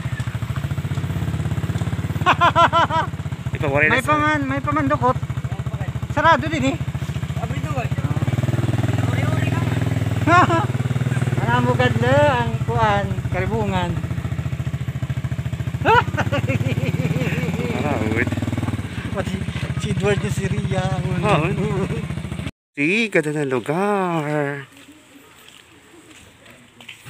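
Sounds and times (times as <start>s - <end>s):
small engine running: 0.0s - 22.5s
people talking: 3.5s - 14.2s, 15.8s - 18.4s, 19.1s - 22.2s, 22.8s - 27.0s.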